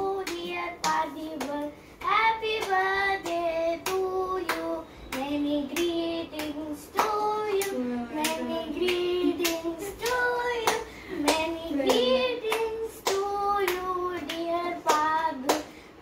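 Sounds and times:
child singing: 0:00.0 - 0:15.6
child clapping: 0:00.1 - 0:15.7.

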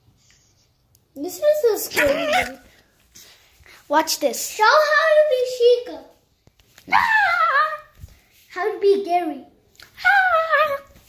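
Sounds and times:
child screaming: 0:06.9 - 0:08.0, 0:10.0 - 0:10.9.

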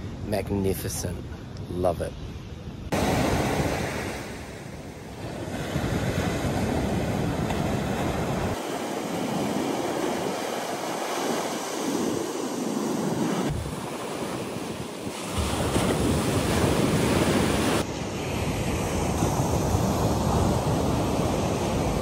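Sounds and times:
wind buffeting microphone: 0:01.1 - 0:22.0
surf washing up a beach: 0:02.9 - 0:22.0.

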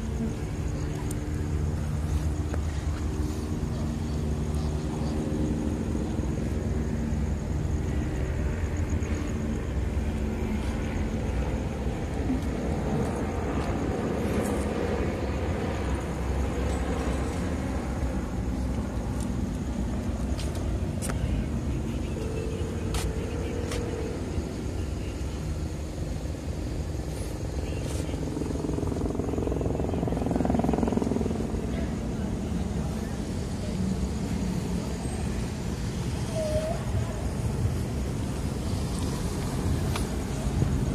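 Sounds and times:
car engines running: 0:00.0 - 0:40.9
road traffic rumble: 0:00.0 - 0:40.9.

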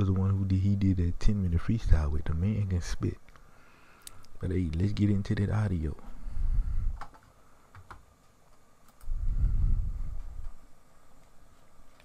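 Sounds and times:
computer mouse clicks: 0:07.0 - 0:09.1
low muffled rumble: 0:09.0 - 0:10.7.

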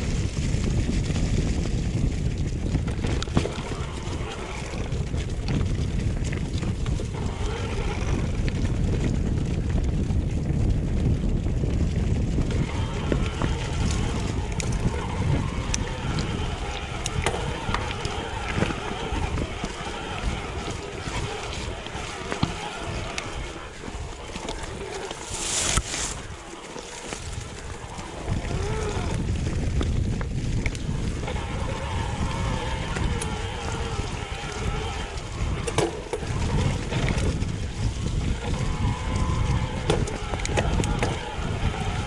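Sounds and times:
bike clicks and rattles: 0:00.0 - 0:42.0
tyres on dirt and stones: 0:00.0 - 0:42.0
wind rushing over microphone: 0:00.0 - 0:42.0.

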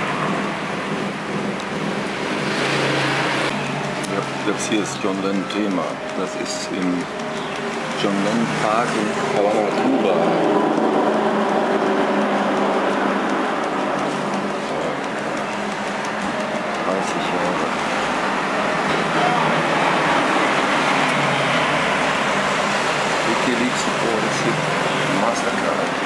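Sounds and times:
indistinct voices: 0:04.0 - 0:26.0.

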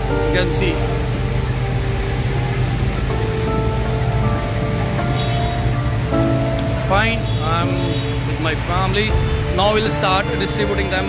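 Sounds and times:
background music with held notes: 0:00.0 - 0:11.0
heavy rain: 0:00.0 - 0:11.0.

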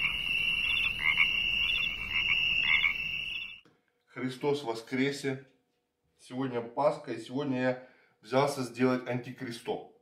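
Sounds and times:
chorus of frogs trilling: 0:00.0 - 0:03.6
frog croaks: 0:00.0 - 0:03.6.

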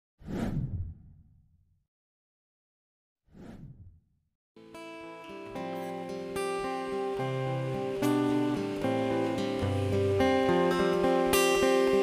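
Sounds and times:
whoosh: 0:03.3 - 0:04.0.

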